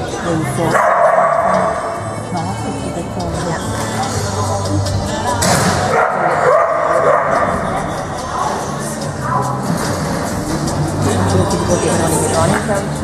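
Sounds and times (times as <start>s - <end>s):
background music: 0.0s - 13.0s
voices: 0.0s - 13.0s
dog barking: 0.7s - 1.7s, 5.9s - 7.6s.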